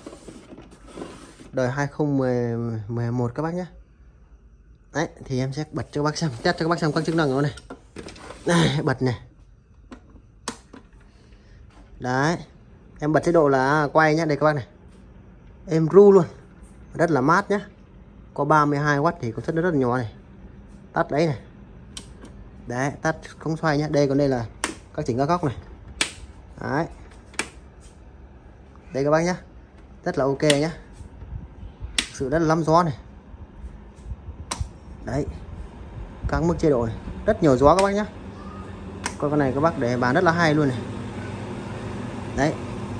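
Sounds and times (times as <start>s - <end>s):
faint steady hum: 0.0s - 42.9s
desk fan switch clicks: 21.9s - 22.4s, 24.6s - 25.0s, 25.9s - 26.4s, 27.1s - 27.6s, 30.4s - 30.8s, 31.9s - 32.3s, 34.4s - 34.8s, 37.7s - 38.0s, 39.0s - 39.2s
plastic fan head clicks: 25.9s - 26.3s, 30.4s - 30.7s, 31.9s - 32.2s, 34.5s - 34.7s.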